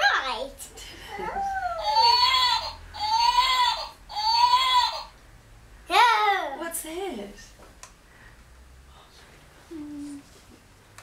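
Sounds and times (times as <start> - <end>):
electronic toy cry sound: 1.8 - 5.1.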